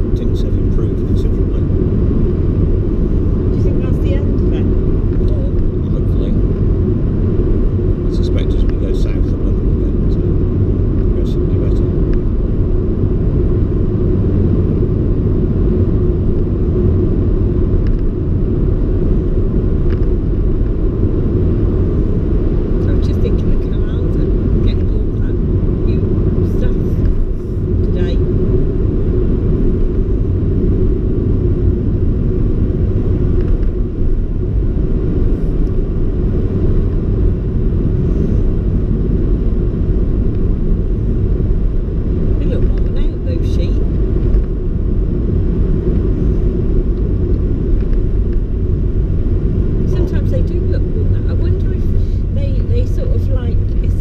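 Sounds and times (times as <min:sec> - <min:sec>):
car cabin tyre and engine rumble: 0:00.0 - 0:54.0.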